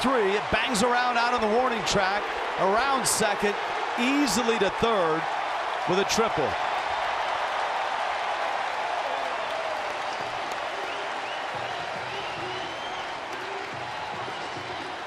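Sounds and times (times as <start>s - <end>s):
crowd cheering and applauding: 0.0s - 15.0s.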